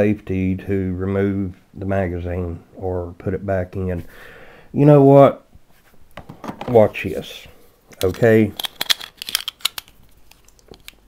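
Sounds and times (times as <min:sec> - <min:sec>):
pistol metallic clicks and scrapes: 0:08.0 - 0:11.0.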